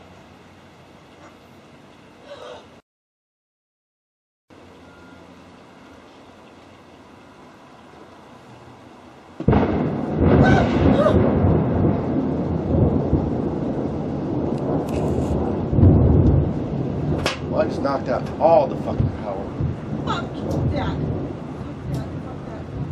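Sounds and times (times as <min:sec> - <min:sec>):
thunder crack and rumble: 0:09.4 - 0:22.9.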